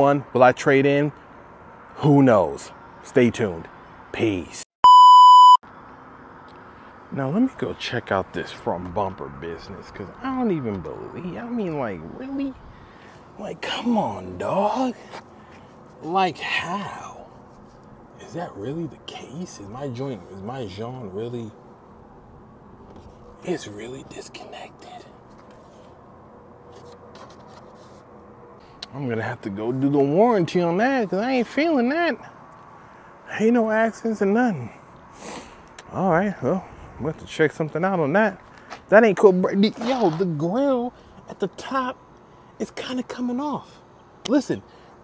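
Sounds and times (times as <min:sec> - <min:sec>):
faint steady background noise: 0:00.0 - 0:45.0
high-pitched test-tone beep: 0:04.8 - 0:05.6
background hum: 0:05.2 - 0:45.0.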